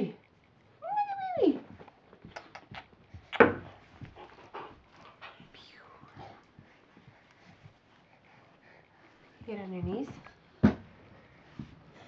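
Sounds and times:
puppy panting: 2.4s - 10.4s.

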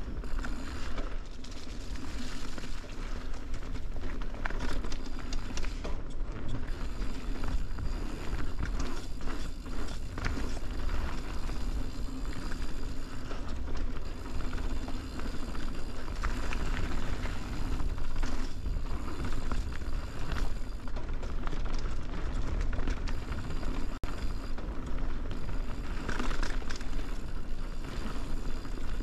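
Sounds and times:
bike clicks and rattles: 0.0s - 29.0s
bike tyres rolling over dirt: 0.0s - 29.0s.

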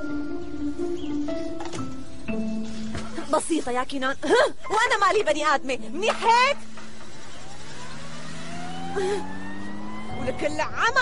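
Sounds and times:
car engine revving: 6.6s - 11.0s.

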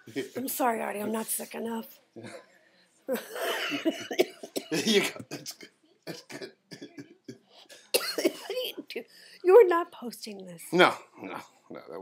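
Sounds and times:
woman coughing and laughing: 3.1s - 7.1s, 7.8s - 8.8s.

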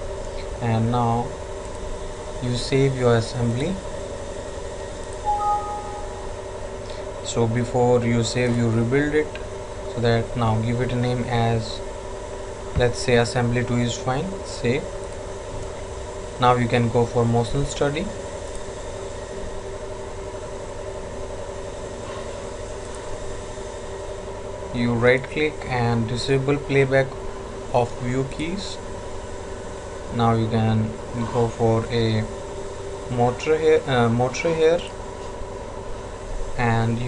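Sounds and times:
steady low hum: 0.0s - 37.0s
two-note electronic alert chime: 5.3s - 6.4s.

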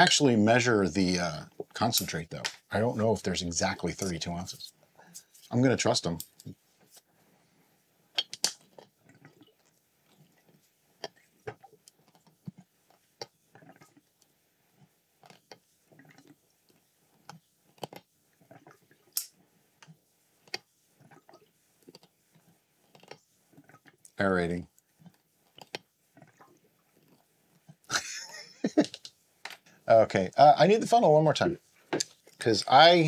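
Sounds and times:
small liquid sounds: 0.0s - 33.0s.

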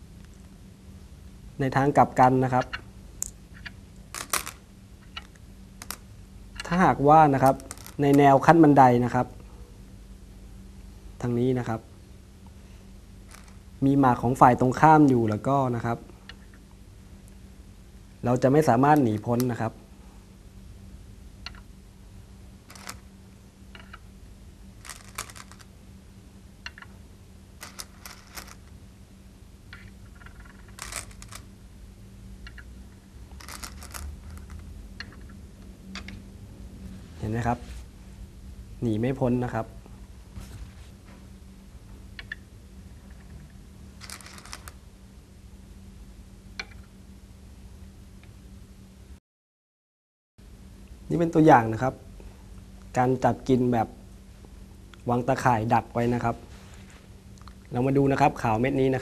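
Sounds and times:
faint low hum: 0.0s - 49.2s, 50.4s - 59.0s
go stones clacking: 3.6s - 6.0s, 7.4s - 8.1s, 13.3s - 13.6s, 22.7s - 23.1s, 24.8s - 25.7s, 27.6s - 28.7s, 29.7s - 31.5s, 33.3s - 35.3s, 44.0s - 44.8s.

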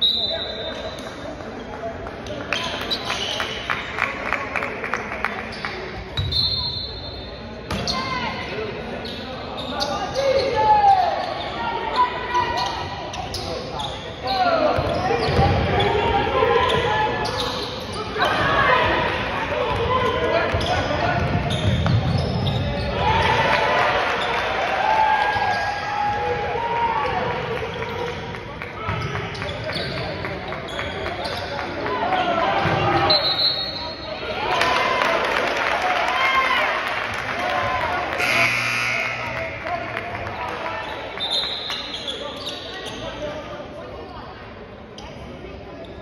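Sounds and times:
sneakers squeaking: 0.0s - 4.1s, 5.4s - 24.5s, 27.3s - 34.3s, 38.1s - 43.5s.

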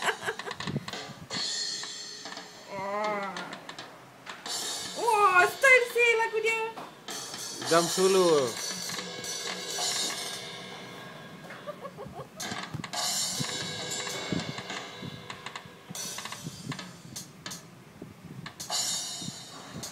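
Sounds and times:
irregular drum hits: 0.0s - 17.6s, 18.4s - 19.9s.

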